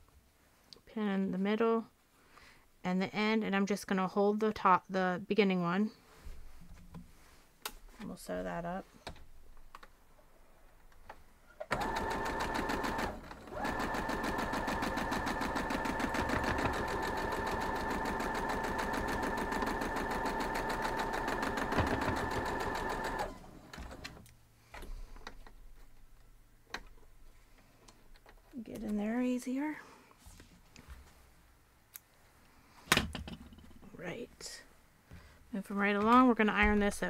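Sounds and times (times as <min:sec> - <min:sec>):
sewing machine stitching: 0:11.6 - 0:24.2.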